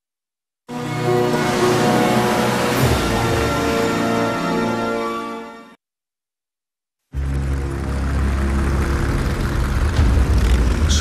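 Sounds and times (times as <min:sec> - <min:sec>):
vehicle engines rumbling: 0:07.2 - 0:11.0.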